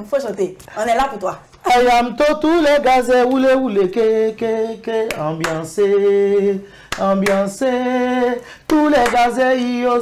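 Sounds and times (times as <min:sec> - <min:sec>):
man singing a cappella: 0:01.6 - 0:10.0.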